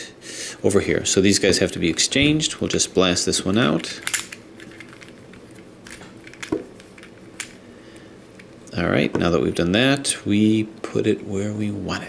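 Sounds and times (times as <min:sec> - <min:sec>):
plastic puzzle clicks: 0:03.8 - 0:07.6.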